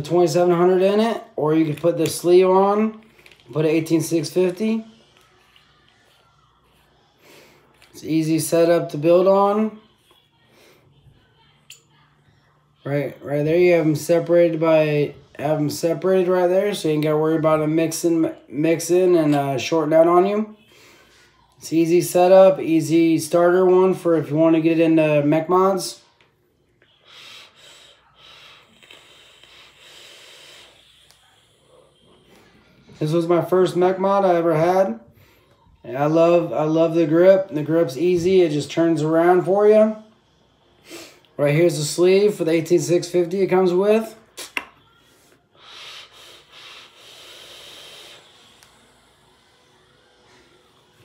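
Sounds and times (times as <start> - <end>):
air hissing through vape: 26.9 - 31.7, 45.5 - 49.8.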